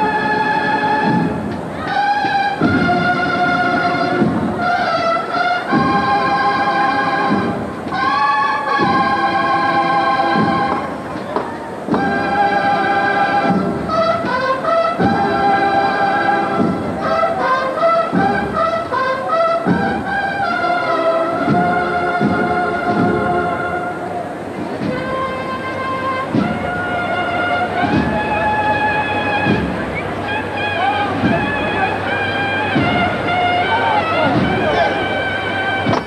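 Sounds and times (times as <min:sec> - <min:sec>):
brass band processional march: 0:00.0 - 0:36.0
drum beats: 0:00.0 - 0:36.0.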